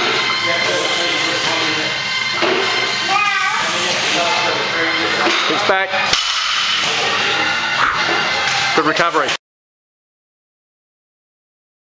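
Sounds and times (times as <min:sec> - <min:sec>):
background music: 0:00.0 - 0:09.4.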